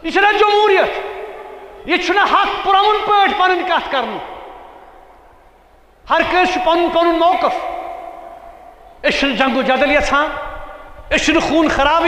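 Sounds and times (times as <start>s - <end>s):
man speaking: 1.8s - 4.4s, 6.1s - 8.1s, 9.0s - 10.5s, 11.1s - 12.0s.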